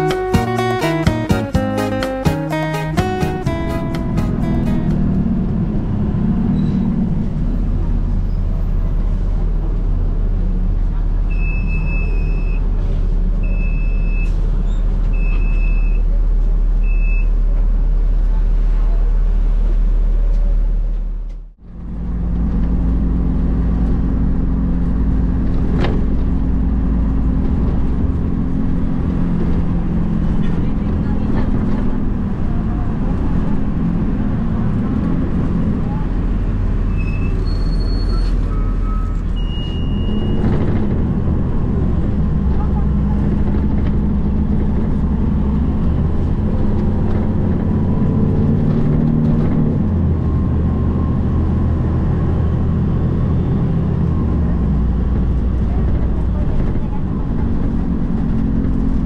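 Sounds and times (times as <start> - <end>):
bus engine hum: 0.0 - 59.0
road noise: 0.0 - 59.0.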